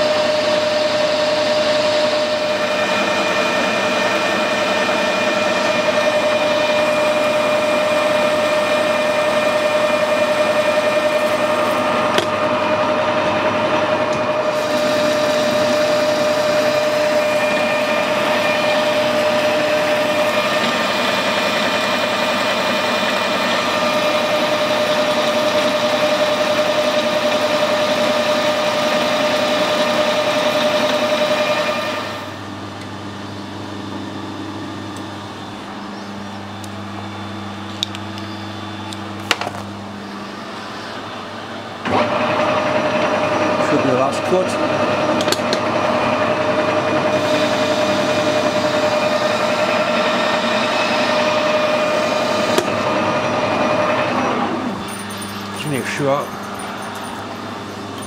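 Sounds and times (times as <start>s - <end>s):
metal lathe whining: 0.0s - 58.0s.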